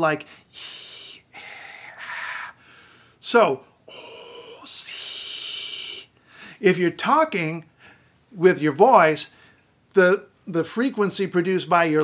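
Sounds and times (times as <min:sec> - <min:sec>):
man whispering: 0:00.0 - 0:02.6, 0:03.2 - 0:06.1.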